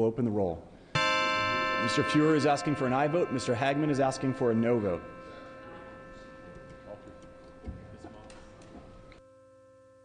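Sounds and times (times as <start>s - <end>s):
steady hum: 1.0s - 9.4s.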